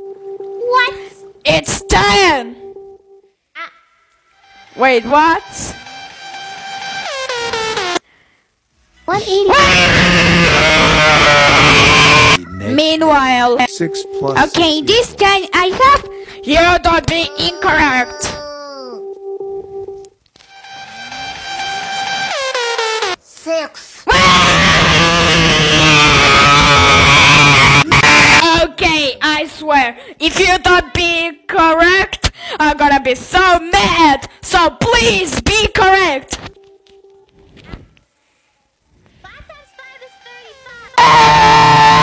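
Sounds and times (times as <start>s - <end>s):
distorted scream meme sound effect: 9.5s - 12.8s, 24.1s - 28.4s, 41.0s - 42.0s.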